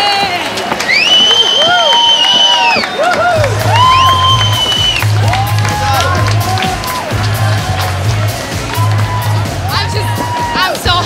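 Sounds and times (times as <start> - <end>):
people cheering and whooping: 0.0 - 11.0
music with pulsing bass beat: 3.2 - 11.0.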